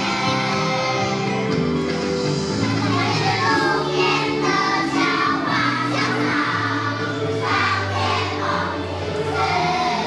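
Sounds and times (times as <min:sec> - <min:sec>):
children singing in chorus: 0:00.0 - 0:01.7, 0:02.6 - 0:10.0
music: 0:00.0 - 0:10.0.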